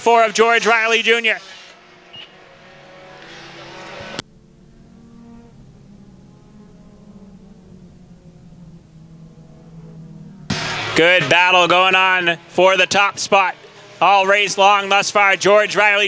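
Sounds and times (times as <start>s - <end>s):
race car engines at speed: 0.0s - 16.0s.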